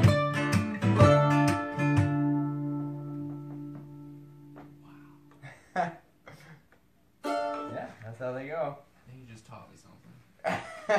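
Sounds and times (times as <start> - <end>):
plucked string chord ringing: 0.1 - 4.6, 7.2 - 7.9.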